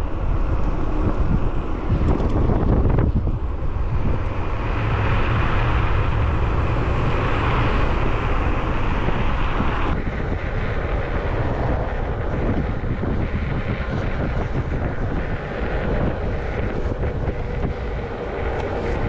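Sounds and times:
wind roar on microphone: 0:00.0 - 0:19.0.

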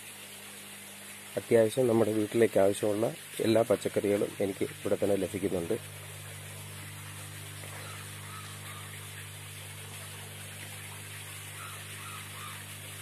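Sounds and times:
machine hum and hiss: 0:00.0 - 0:13.0.

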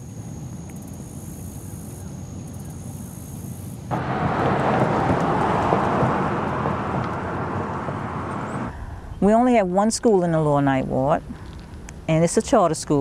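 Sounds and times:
insects droning: 0:00.0 - 0:08.7
loud rushing noise: 0:03.9 - 0:08.8.

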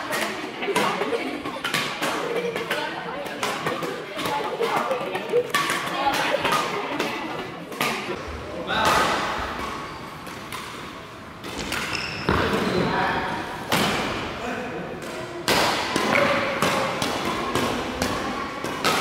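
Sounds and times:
badminton rackets striking shuttlecock: 0:00.0 - 0:08.2, 0:08.8 - 0:12.4, 0:15.0 - 0:19.0.

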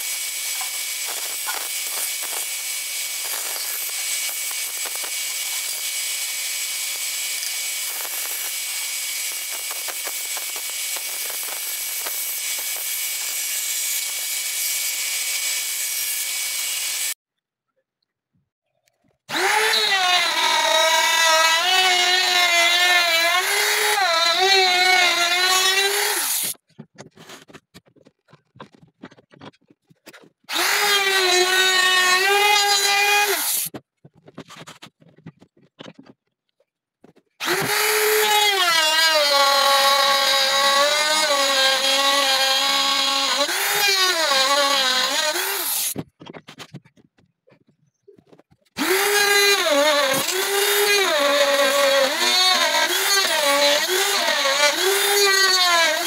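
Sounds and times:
router whining through wood: 0:00.0 - 0:17.2, 0:19.3 - 0:26.6, 0:30.5 - 0:33.8, 0:37.4 - 0:46.1, 0:48.7 - 0:56.0
band saw cutting board: 0:48.8 - 0:56.0.

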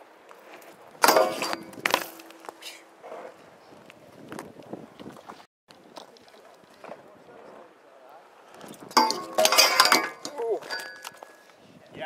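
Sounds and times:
bike pegs grinding on metal rail: 0:01.0 - 0:02.5, 0:08.8 - 0:11.3
metal rail ringing: 0:01.0 - 0:02.6, 0:08.9 - 0:11.4.

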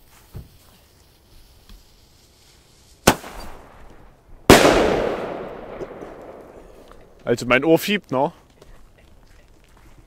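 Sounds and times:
firework crack: 0:00.0 - 0:07.3
loud firework bang with echo: 0:04.5 - 0:06.8.

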